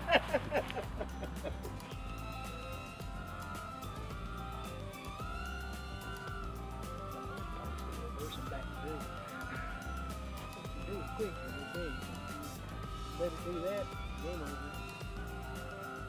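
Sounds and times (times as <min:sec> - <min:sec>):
quadcopter propellers whining: 0:00.0 - 0:16.0.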